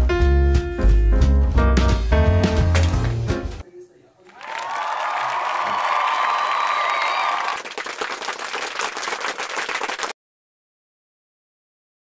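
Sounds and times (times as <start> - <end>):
crowd clapping: 2.5 - 3.4, 4.2 - 10.2
crowd cheering: 4.2 - 10.1.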